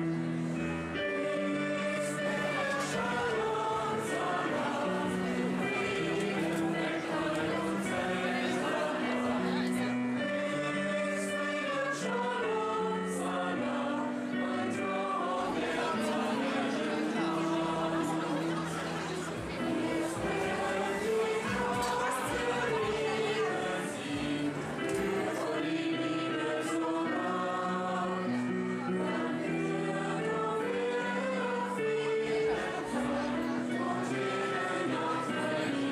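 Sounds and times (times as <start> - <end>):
mixed choir singing in parts: 0.0 - 35.9.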